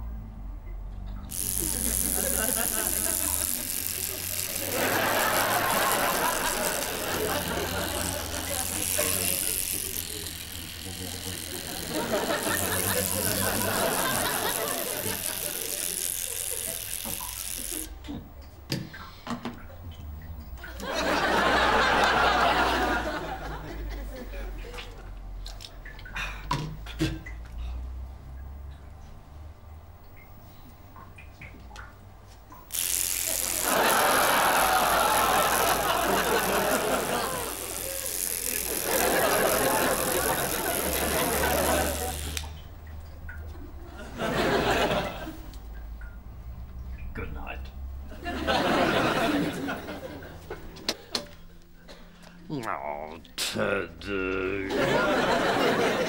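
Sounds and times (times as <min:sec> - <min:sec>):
electric toothbrush buzzing: 0:01.3 - 0:25.0, 0:32.6 - 0:46.0, 0:47.4 - 0:50.9.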